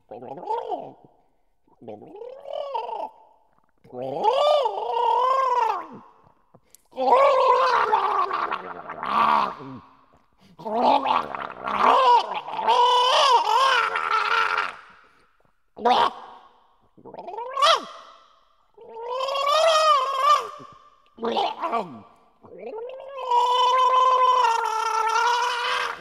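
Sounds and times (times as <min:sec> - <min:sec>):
person gargling pitched tones: 0:00.0 - 0:01.1, 0:01.8 - 0:06.3, 0:06.9 - 0:15.1, 0:16.9 - 0:18.1, 0:18.8 - 0:26.0.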